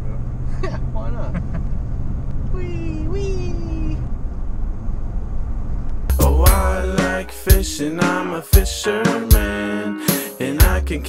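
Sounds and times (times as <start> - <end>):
car driving heard from inside: 0.0 - 6.9.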